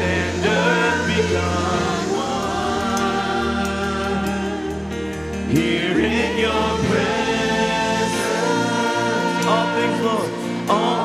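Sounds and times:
man and woman singing: 0.0 - 11.0.

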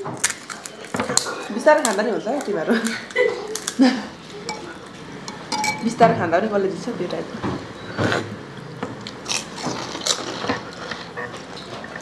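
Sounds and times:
spoons clinking against steel bowls: 4.3 - 6.1.

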